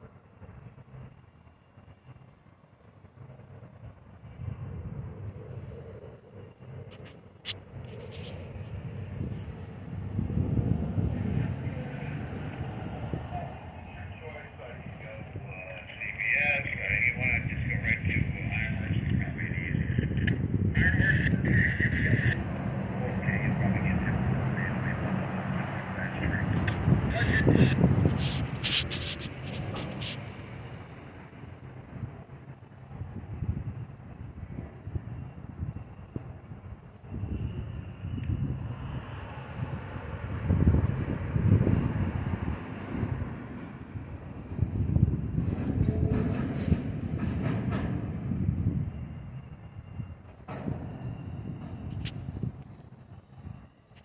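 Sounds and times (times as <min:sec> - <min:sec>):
freight train wheels rumbling: 0:00.0 - 0:54.0.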